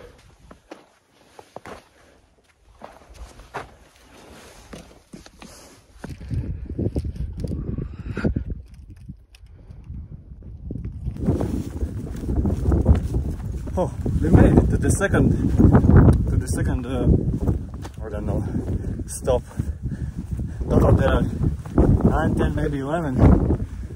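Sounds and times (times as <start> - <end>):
footsteps on rocky ground: 0.0 - 7.6, 10.7 - 23.9
wind buffeting microphone: 5.9 - 23.9.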